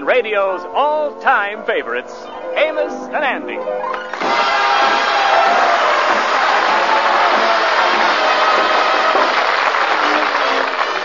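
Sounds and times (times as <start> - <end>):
music playing: 0.0 - 11.0
audience applauding: 3.9 - 11.0.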